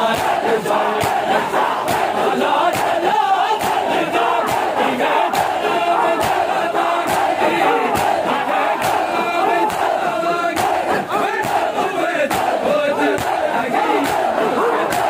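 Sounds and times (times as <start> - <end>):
crowd slapping chests in unison: 0.0 - 15.0
massed chanting voices: 0.0 - 15.0.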